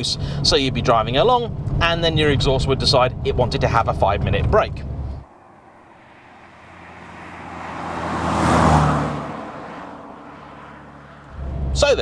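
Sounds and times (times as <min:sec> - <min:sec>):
car driving past: 0:04.8 - 0:11.8.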